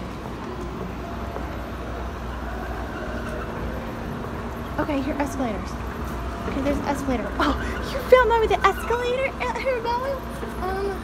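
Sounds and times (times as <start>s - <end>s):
escalator hum and rumble: 0.0s - 11.0s
mall background noise: 0.0s - 11.0s.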